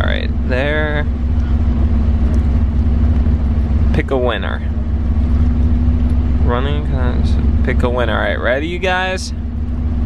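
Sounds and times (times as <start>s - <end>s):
engine drone: 0.0s - 10.0s.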